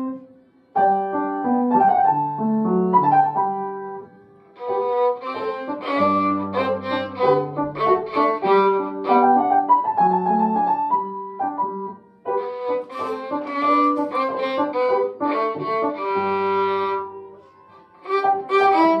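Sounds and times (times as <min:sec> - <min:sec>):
violin playing short bowed notes: 0:04.6 - 0:09.6, 0:12.2 - 0:19.0.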